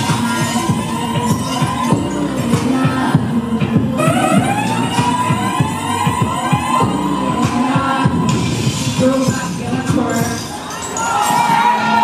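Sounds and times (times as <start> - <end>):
siren wail in dance music: 0.0 - 10.1, 11.1 - 12.0
bass drum beat: 0.0 - 10.2.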